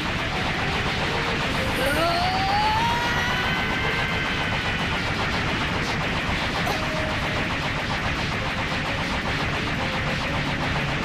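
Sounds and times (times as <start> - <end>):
rising pitched tone: 0.4 - 7.8.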